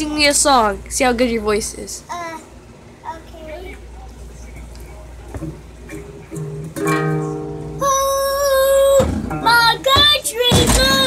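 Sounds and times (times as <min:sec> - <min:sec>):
acoustic guitar strummed: 0:05.8 - 0:11.0.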